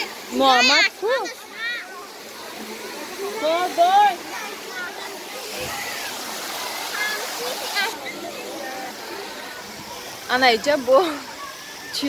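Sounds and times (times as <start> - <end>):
children calling: 0.0 - 12.0.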